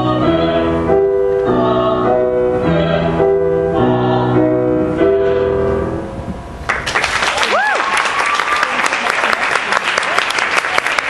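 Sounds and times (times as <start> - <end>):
man and woman singing duet: 0.0 - 5.7.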